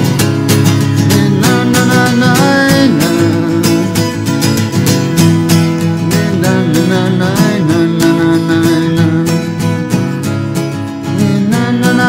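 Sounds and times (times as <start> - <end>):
acoustic guitar strumming: 0.0 - 12.0
sliding guitar melody: 0.0 - 12.0.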